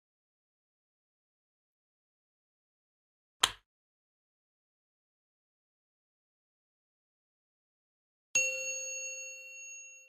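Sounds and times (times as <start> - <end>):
bell-like ding: 8.4 - 10.0.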